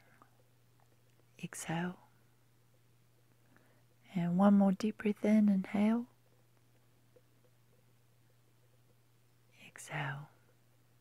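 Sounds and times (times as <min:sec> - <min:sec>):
faint low hum: 0:00.0 - 0:11.0
woman speaking softly: 0:01.3 - 0:02.2, 0:04.0 - 0:06.2, 0:09.5 - 0:10.4.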